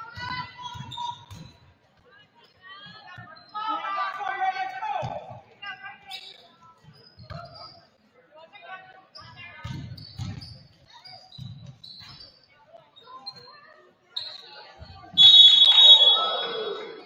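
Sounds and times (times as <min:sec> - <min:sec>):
shoe squeaks: 0:00.2 - 0:01.7, 0:06.1 - 0:08.0, 0:09.2 - 0:16.7
crowd shouting: 0:15.2 - 0:17.0
referee's whistle: 0:15.2 - 0:17.0.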